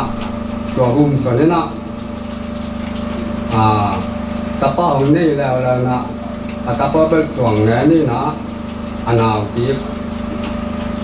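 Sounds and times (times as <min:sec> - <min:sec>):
man speaking into a microphone: 0:00.8 - 0:01.8, 0:03.5 - 0:08.4, 0:09.1 - 0:09.9.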